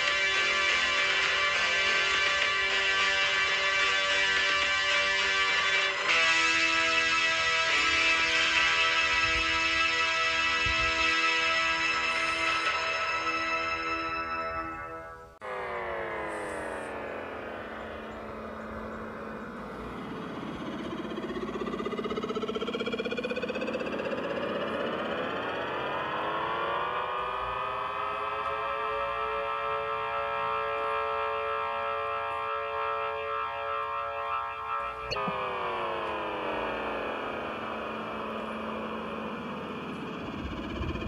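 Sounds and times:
music: 0.0 - 15.4
loud sustained synth chord: 0.0 - 41.0
synthesized sliding tones: 0.0 - 41.0.

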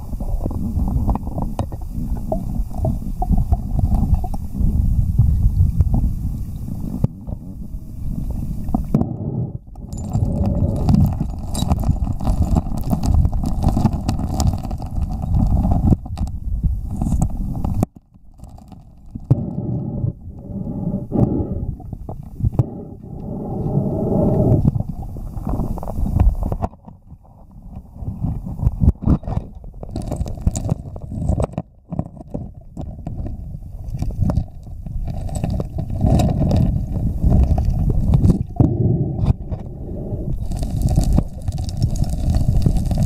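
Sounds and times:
gravel clicks underwater: 0.0 - 43.0
underwater rumble of moving water: 0.0 - 43.0.

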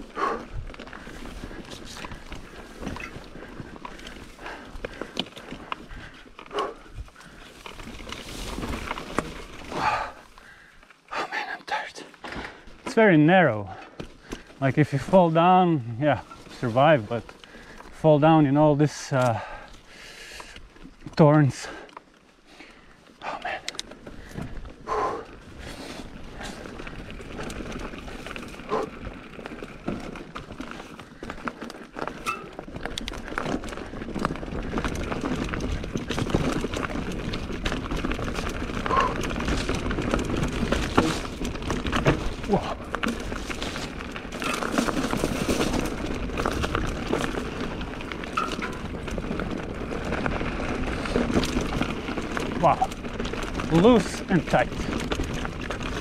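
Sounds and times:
bike rattling and knocking: 0.0 - 10.7, 12.2 - 23.0, 23.8 - 56.0
bike tyres rolling on dirt: 0.0 - 56.0.

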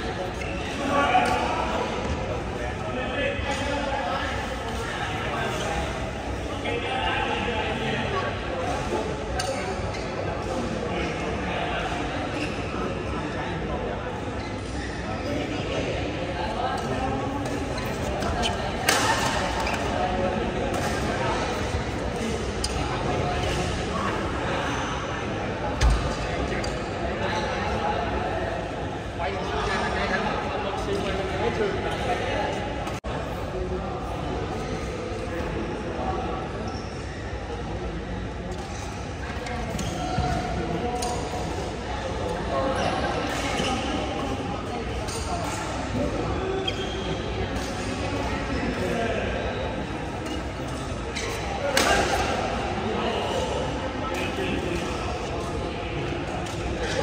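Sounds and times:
echoing background chatter: 0.0 - 57.0.

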